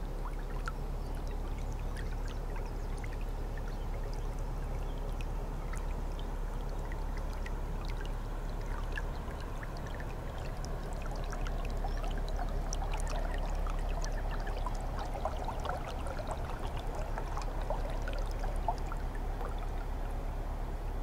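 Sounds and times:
water splashing along boat bow: 0.0s - 20.9s.

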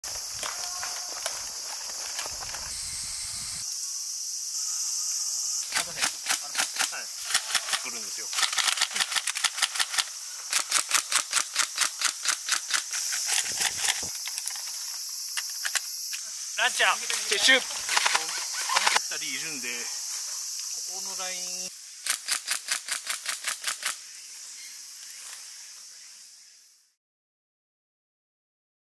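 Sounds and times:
high drone of insects: 0.0s - 27.0s
steady high-pitched hiss: 0.0s - 27.0s
leaves and twigs snapping: 0.1s - 2.7s.

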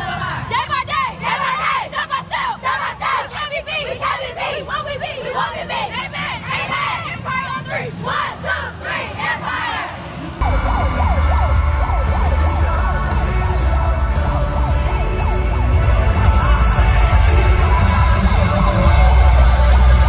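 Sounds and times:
girls shouting and chanting: 0.0s - 10.0s
cheer music with heavy bass: 10.4s - 20.0s.

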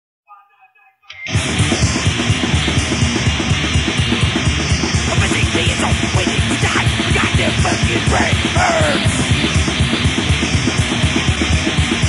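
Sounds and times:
rapid drum beats: 1.3s - 12.0s
thrash metal band playing: 1.3s - 12.0s.

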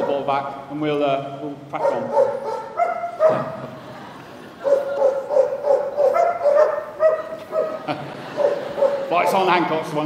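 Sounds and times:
dog barking: 1.8s - 3.6s, 4.6s - 9.4s.

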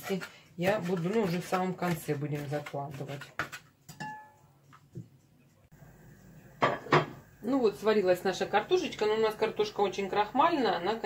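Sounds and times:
pot and utensils clinking: 3.2s - 4.5s.

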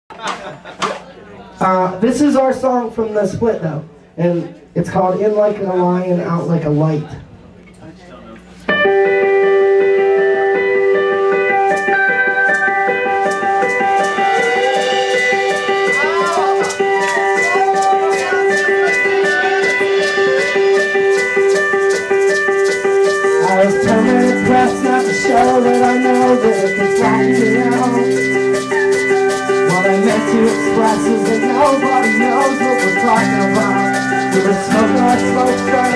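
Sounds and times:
guitar: 6.2s - 35.9s
folk band playing: 10.5s - 35.9s
shaker rhythm: 11.7s - 35.9s.

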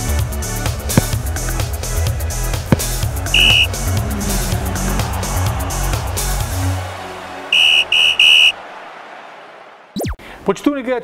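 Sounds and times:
intro music: 2.8s - 7.6s
referee's whistle blasts: 3.3s - 3.8s, 7.5s - 8.6s.

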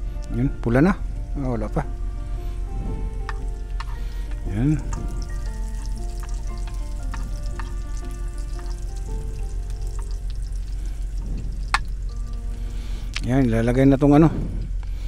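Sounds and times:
music with long held notes: 0.0s - 15.0s
garlic sizzling in oil: 1.0s - 13.4s
metal spoon scraping a pan: 3.2s - 8.0s.

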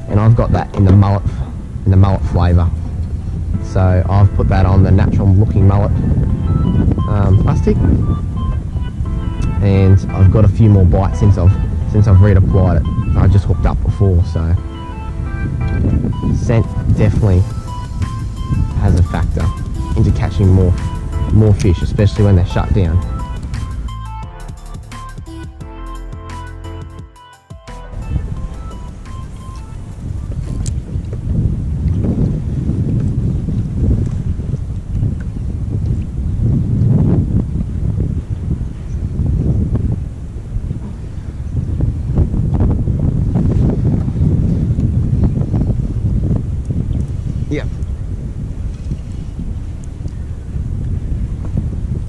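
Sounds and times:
wind buffeting microphone: 0.0s - 24.3s, 27.9s - 52.0s
background music: 0.0s - 30.7s.

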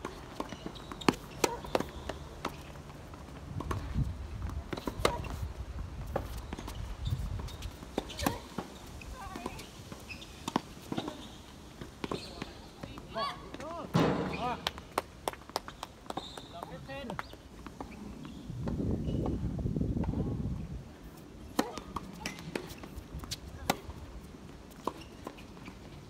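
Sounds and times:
shoe squeaks: 0.3s - 2.8s, 4.8s - 5.5s, 6.2s - 13.4s, 16.1s - 16.8s, 24.8s - 26.0s
tennis ball struck by rackets: 4.7s - 5.4s, 8.0s - 8.7s, 21.5s - 23.0s.

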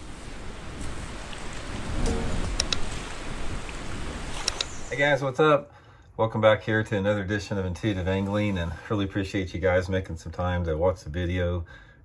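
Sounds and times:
rushing water: 0.0s - 5.4s
short sharp ticks: 4.4s - 4.8s.

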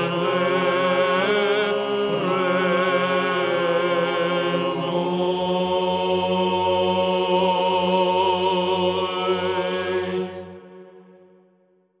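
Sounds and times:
male choir chanting: 0.0s - 11.0s.

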